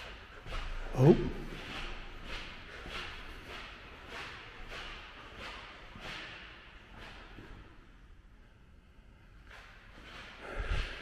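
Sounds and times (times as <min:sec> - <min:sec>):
footsteps on polished floor: 0:00.0 - 0:08.3, 0:08.9 - 0:11.0.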